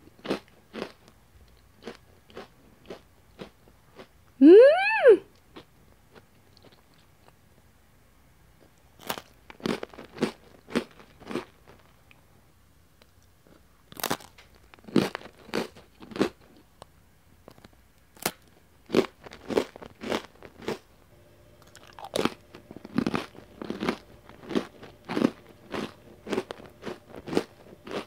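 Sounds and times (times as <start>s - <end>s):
cracker being bitten and chewed: 0.0s - 4.1s, 5.4s - 7.7s, 8.6s - 12.3s, 13.0s - 20.8s, 21.6s - 28.0s.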